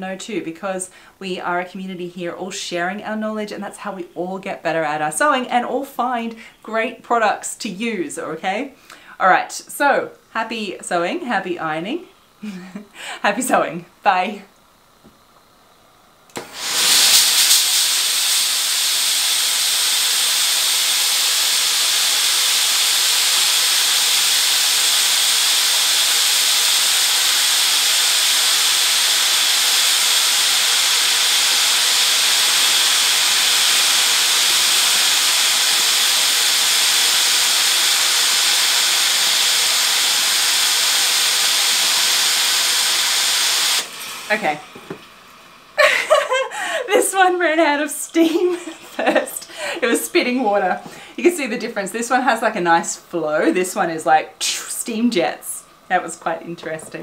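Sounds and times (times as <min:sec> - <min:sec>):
steam iron hissing: 0:16.3 - 0:47.2, 0:47.8 - 0:51.2
water spitting from iron: 0:16.4 - 0:44.3.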